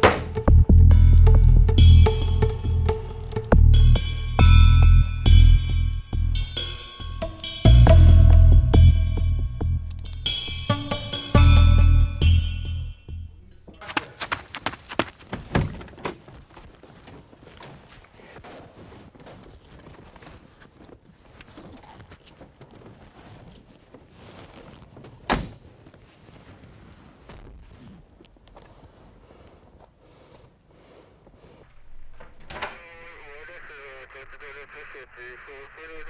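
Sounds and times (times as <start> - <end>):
door clicks and knocks: 0.0 - 0.4, 15.3 - 16.2, 32.2 - 32.8
loud door thunk: 0.0 - 0.4, 15.3 - 16.1, 25.3 - 25.6.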